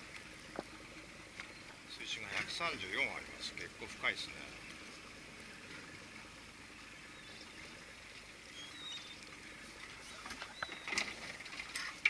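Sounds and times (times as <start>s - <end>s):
sea water washing around boat: 0.0s - 12.0s.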